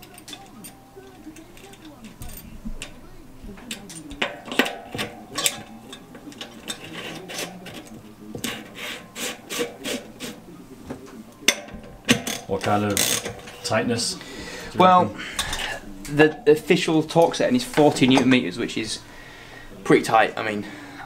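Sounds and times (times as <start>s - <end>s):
metal bicycle parts clinking and scraping: 0.0s - 19.0s.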